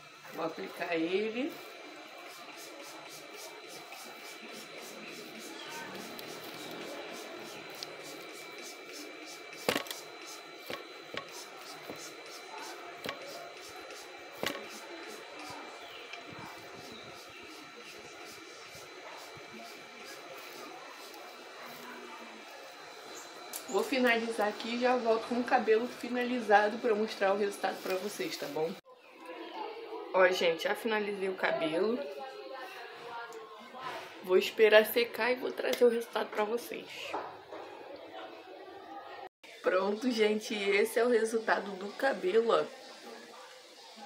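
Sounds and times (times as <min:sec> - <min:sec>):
fingers rubbing hair: 0:01.7 - 0:22.7.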